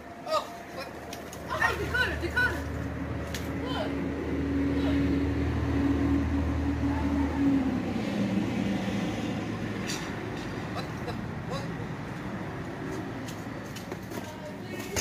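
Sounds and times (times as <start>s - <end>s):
vehicle engine drone: 0.0s - 13.8s.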